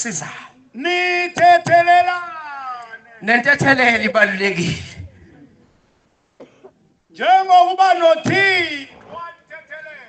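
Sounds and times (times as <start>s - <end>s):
man's voice: 0.0s - 5.1s, 7.1s - 10.0s
short cough: 6.4s - 6.8s.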